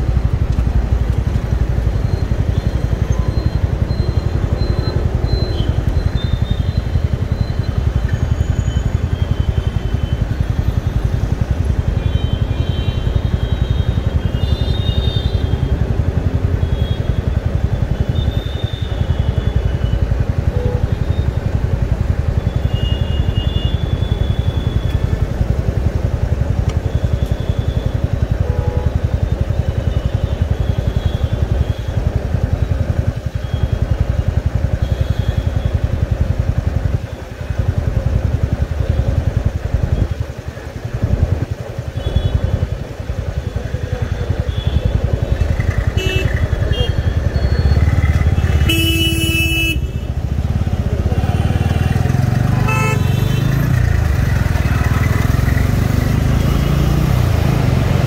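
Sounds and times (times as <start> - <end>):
motorcycle engine running: 0.0 - 58.0
road noise: 0.0 - 58.0
vehicles honking: 2.4 - 21.5, 22.4 - 25.4, 26.6 - 32.5, 41.8 - 58.0
loud horn blast: 46.0 - 47.0, 48.3 - 50.2, 52.5 - 53.7.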